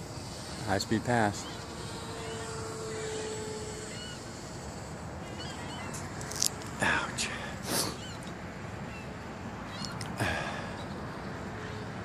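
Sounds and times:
model airplane motor tone: 0.0 - 6.4
faint bird chirps: 1.2 - 4.4, 5.2 - 7.0, 7.8 - 8.3, 8.9 - 11.9.

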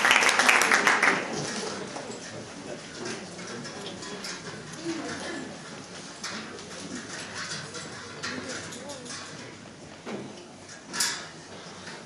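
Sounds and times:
audience murmuring: 0.0 - 10.7.

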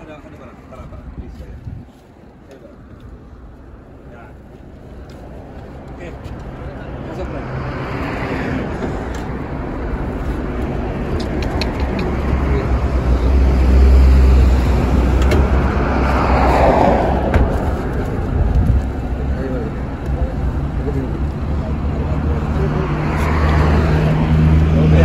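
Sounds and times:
road traffic engine rumble: 0.0 - 25.0
vehicle passing: 5.3 - 25.0.

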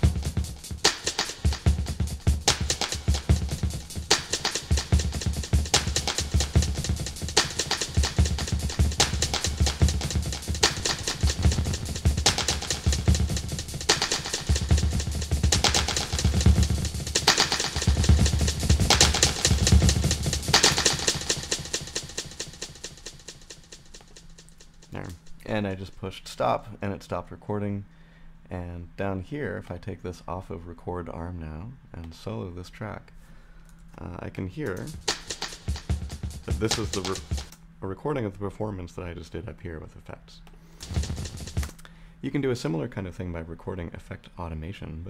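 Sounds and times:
drum loop with shifting echoes: 0.0 - 25.4, 34.6 - 37.6, 40.8 - 41.9.

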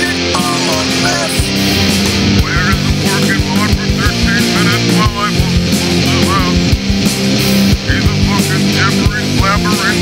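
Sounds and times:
distorted electric guitars: 0.0 - 10.0
drums hitting steadily: 0.0 - 10.0.

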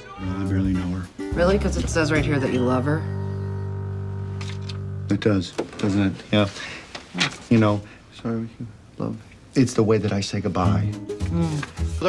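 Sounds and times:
sustained chord music: 0.0 - 5.5.

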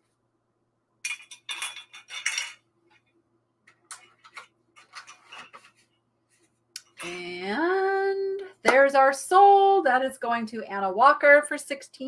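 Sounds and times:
dishes clinking and clattering: 1.0 - 2.7, 3.9 - 5.9.

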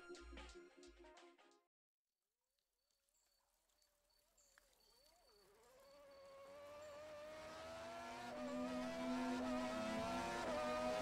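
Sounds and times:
car engine note rising: 6.3 - 11.0.

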